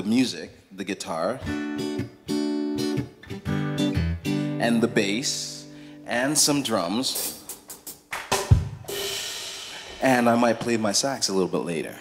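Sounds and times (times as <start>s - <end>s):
drum hit: 7.7s - 10.9s.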